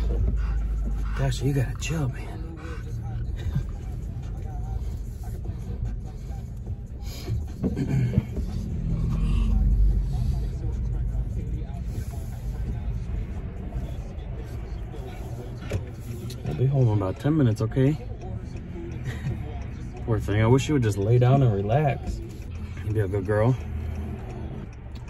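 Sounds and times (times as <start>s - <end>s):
car road and engine rumble: 0.0s - 25.0s.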